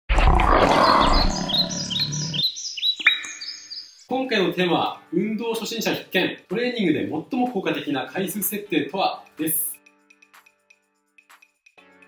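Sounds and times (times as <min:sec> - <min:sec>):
lion roaring: 0:00.1 - 0:02.4.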